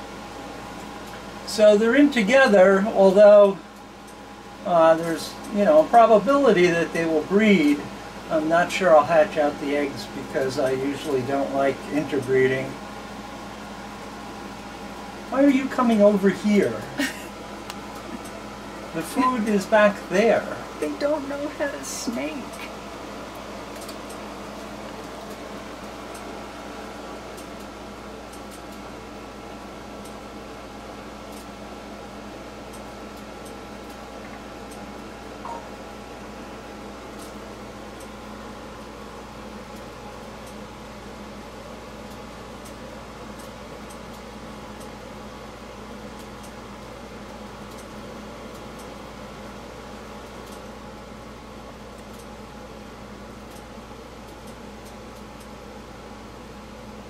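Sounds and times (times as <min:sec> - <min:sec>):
mechanical hum: 0:00.0 - 0:57.0.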